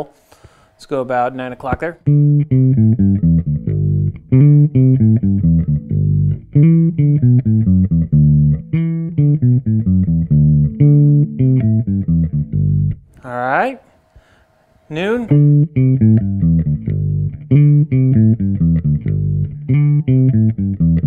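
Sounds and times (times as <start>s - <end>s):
bass guitar riff: 2.0s - 13.2s, 14.9s - 21.0s.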